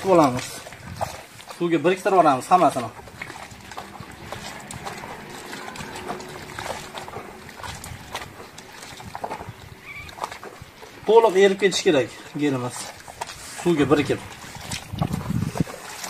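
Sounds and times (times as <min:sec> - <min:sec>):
small water splashes: 0:00.0 - 0:16.0
sponge squelching in water: 0:00.0 - 0:16.0.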